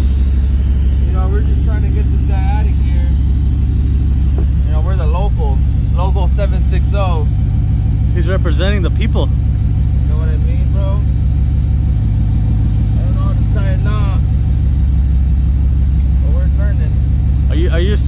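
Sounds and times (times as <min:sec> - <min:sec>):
truck engine idling: 0:00.0 - 0:18.0
voices talking: 0:01.0 - 0:11.1, 0:12.8 - 0:14.4, 0:16.0 - 0:18.0.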